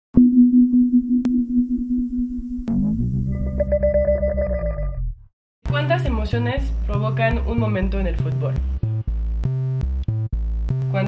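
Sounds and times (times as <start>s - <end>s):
steady electronic tone: 0.2s - 5.2s.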